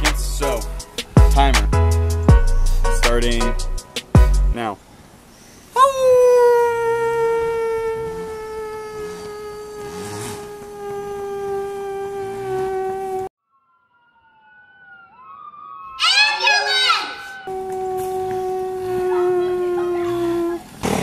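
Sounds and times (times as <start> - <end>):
man howling like a wolf: 5.8 - 13.1, 14.1 - 20.7
faint siren wailing: 5.8 - 20.7.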